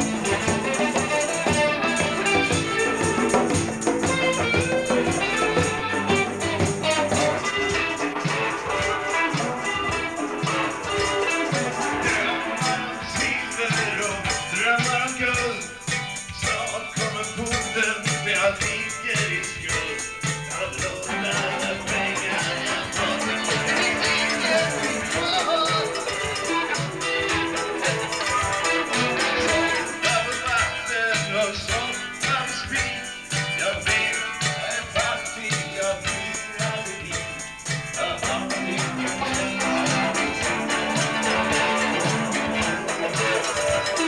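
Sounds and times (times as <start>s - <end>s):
bass guitar: 0.0s - 44.0s
guitar: 0.0s - 44.0s
hand drums: 0.0s - 44.0s
person singing into microphone: 10.8s - 42.2s.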